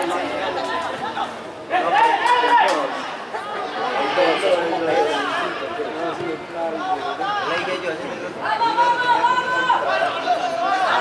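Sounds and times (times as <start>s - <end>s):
people talking and calling out: 0.0s - 11.0s.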